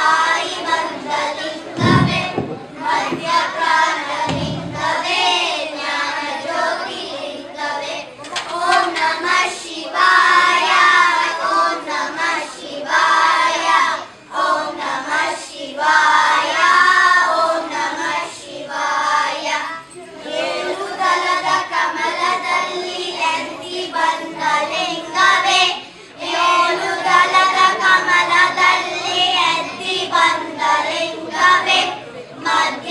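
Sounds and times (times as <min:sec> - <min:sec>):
children singing in unison: 0:00.0 - 0:32.9.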